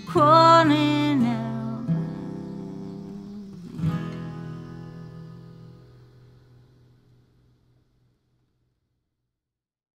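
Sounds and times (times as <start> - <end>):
acoustic guitar chord ringing: 0.0 - 8.1.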